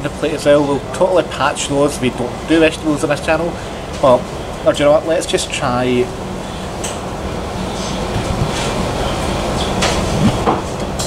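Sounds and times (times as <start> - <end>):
rumbling shop background noise: 0.0 - 11.0.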